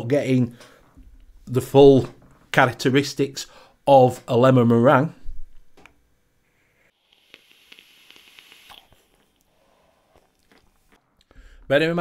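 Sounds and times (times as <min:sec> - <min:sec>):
faint hiss of air through vape: 0:06.6 - 0:10.3.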